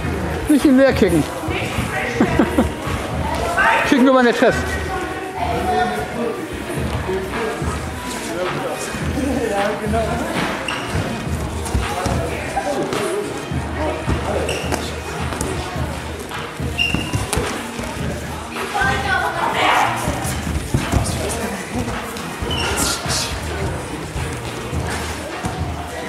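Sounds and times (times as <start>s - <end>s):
footfalls on hall floor: 9.8s - 26.0s.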